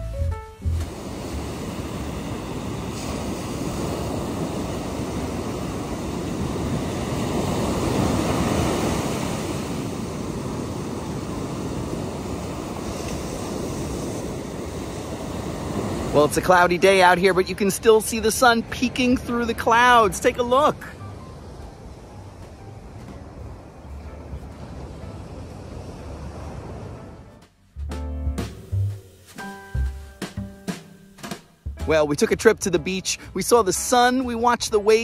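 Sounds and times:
surf breaking on sandy beach: 0.7 - 27.4, 28.4 - 32.2.

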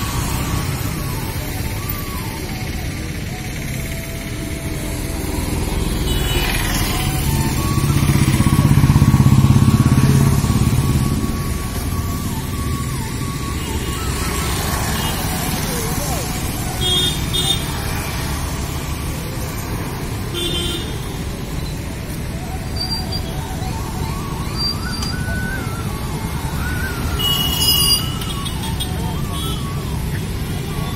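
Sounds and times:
traffic hum: 0.0 - 30.9
vehicle engine passing: 3.7 - 20.3.

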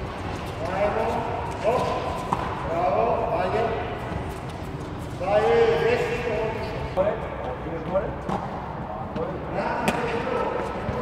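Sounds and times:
tennis ball impact: 1.5 - 2.7, 9.8 - 10.2.

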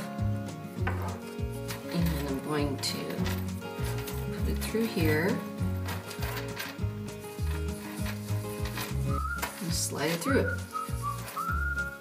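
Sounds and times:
upbeat music with bass line: 0.0 - 12.0
whistled melody: 8.8 - 12.0.

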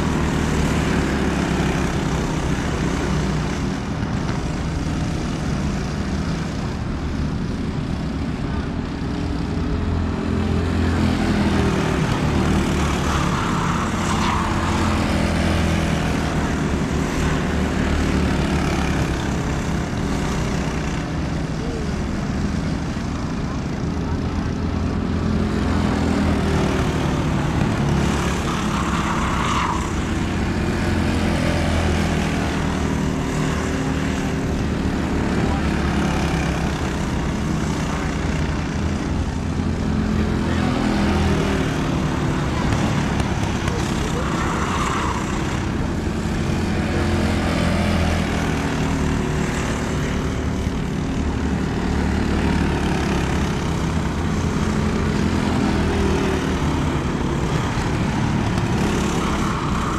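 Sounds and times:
racing kart engines drone: 0.0 - 59.9.

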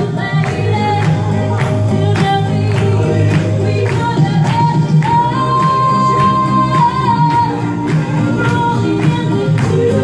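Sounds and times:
backing music with steady beat: 0.0 - 10.0
woman singing into microphone: 0.0 - 10.0.

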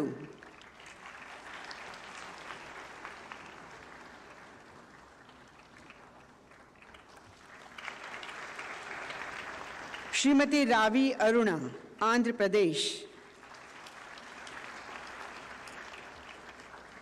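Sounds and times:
audience applauding: 0.0 - 10.5, 13.3 - 17.0.

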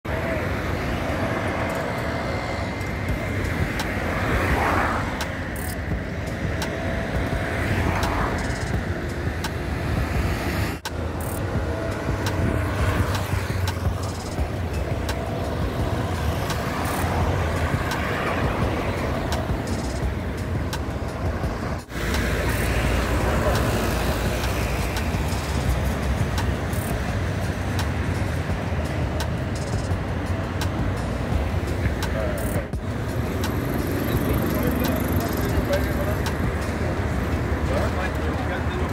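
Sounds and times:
cars and vans driving past: 0.1 - 38.9.

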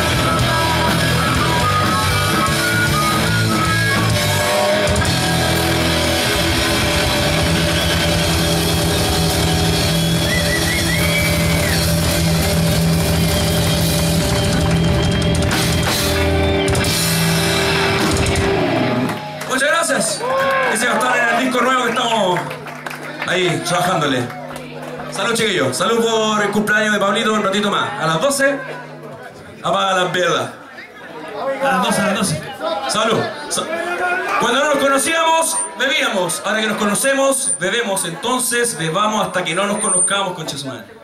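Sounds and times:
harmonica notes: 0.0 - 19.1
rock band playing: 0.0 - 25.8.

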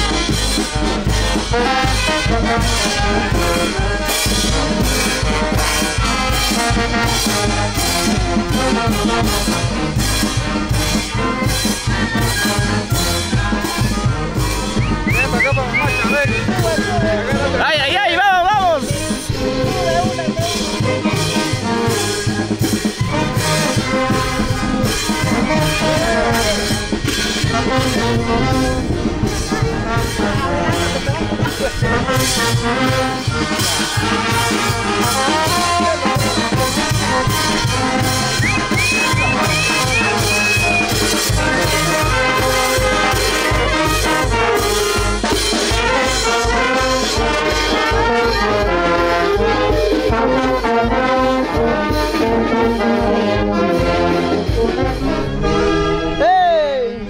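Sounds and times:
steady bass drum beat: 0.0 - 51.8
marching brass band playing: 0.0 - 57.0.

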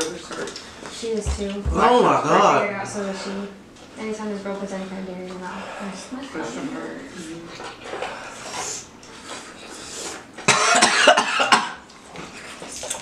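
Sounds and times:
man coughing hard: 10.5 - 11.8.

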